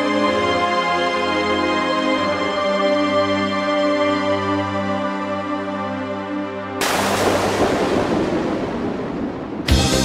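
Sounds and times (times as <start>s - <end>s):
crash-like wash of noise: 6.8s - 9.7s.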